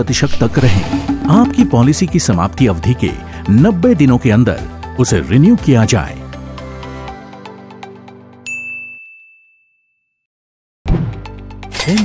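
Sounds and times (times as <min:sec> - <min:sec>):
background music: 0:00.0 - 0:08.4, 0:11.0 - 0:12.0
bright chime ding: 0:08.5 - 0:09.7.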